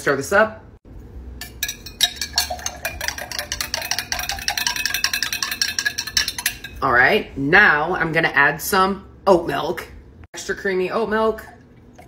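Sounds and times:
metal straw clinking glass: 0:01.4 - 0:06.8.

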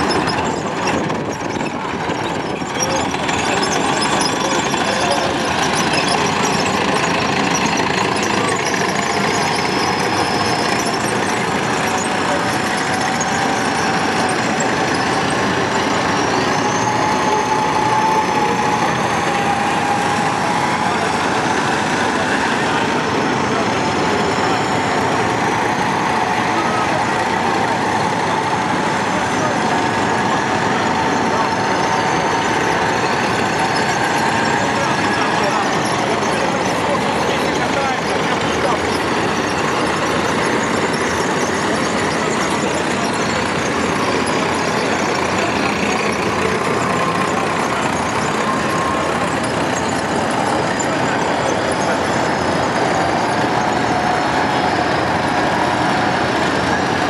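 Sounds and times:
faint drawn-out whine: 0:00.0 - 0:57.0
tracked vehicle engines running: 0:00.0 - 0:57.0.

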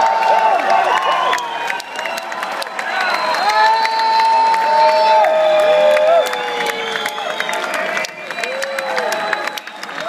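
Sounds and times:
crowd cheering and clapping: 0:00.0 - 0:10.0
fans shouting: 0:00.0 - 0:10.0.

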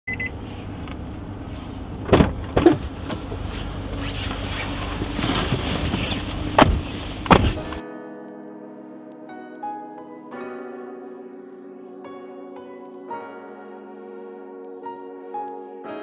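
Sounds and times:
car cabin hum: 0:00.1 - 0:07.8
knocks and clunks: 0:02.0 - 0:03.5, 0:04.9 - 0:07.8
plucked and piano music: 0:07.4 - 0:16.0.

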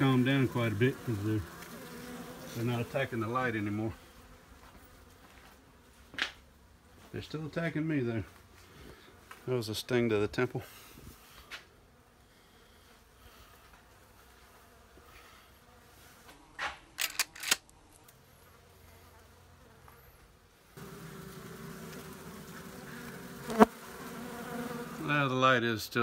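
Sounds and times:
bees buzzing in a hive: 0:00.0 - 0:16.6, 0:18.0 - 0:25.6
sharp clicks: 0:17.0 - 0:18.2.

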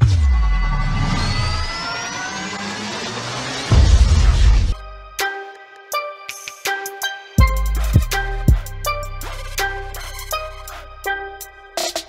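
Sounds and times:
tones gliding upward: 0:00.6 - 0:11.8.

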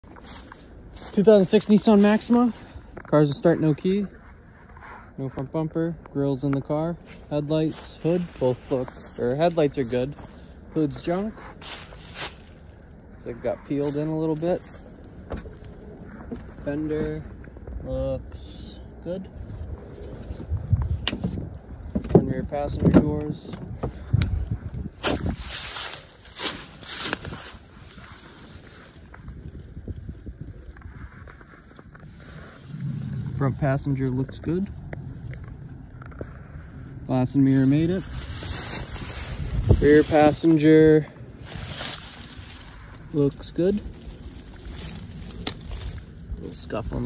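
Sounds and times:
footsteps crunching dry leaves: 0:00.0 - 0:04.1, 0:06.9 - 0:17.3, 0:24.4 - 0:47.0
wind rumble on microphone: 0:00.0 - 0:47.0.

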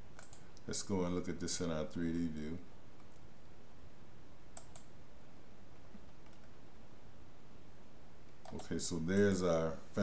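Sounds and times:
steady background hiss: 0:00.0 - 0:10.0
computer mouse clicks: 0:00.1 - 0:00.7, 0:04.5 - 0:05.0, 0:05.9 - 0:06.6, 0:08.4 - 0:09.4.

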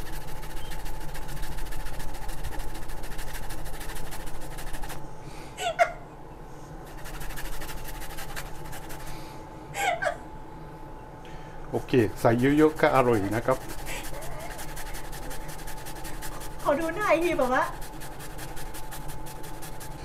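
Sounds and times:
ginger grated on metal grater: 0:00.0 - 0:05.0, 0:06.9 - 0:09.1, 0:12.3 - 0:20.0.

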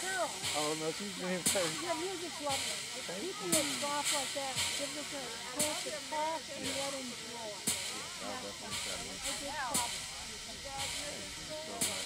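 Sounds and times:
steady hiss: 0:00.0 - 0:12.0
voices talking: 0:00.0 - 0:12.0.

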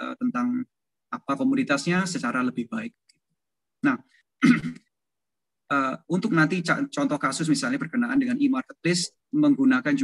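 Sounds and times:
person clearing throat: 0:04.4 - 0:04.9
person speaking: 0:05.6 - 0:10.0.

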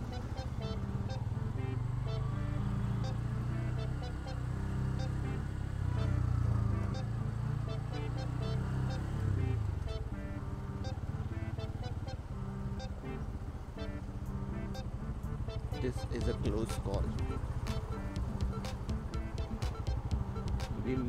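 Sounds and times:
background music: 0:00.0 - 0:21.0
idling traffic: 0:00.0 - 0:21.0
motorcycle engine: 0:00.0 - 0:21.0.

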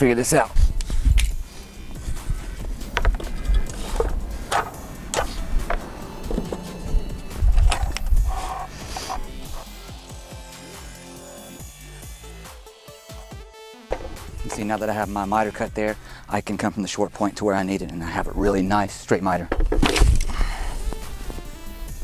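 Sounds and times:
background music: 0:00.0 - 0:22.0
wooden board thumps: 0:02.9 - 0:03.3, 0:13.9 - 0:14.6, 0:19.5 - 0:20.2.

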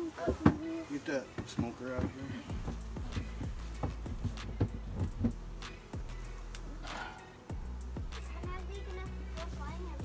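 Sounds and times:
wooden cover knocking and scraping: 0:01.4 - 0:05.4.

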